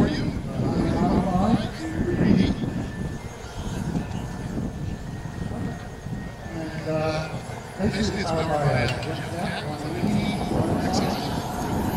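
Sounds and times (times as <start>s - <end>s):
model jet turbine engine whine: 0.0s - 11.9s.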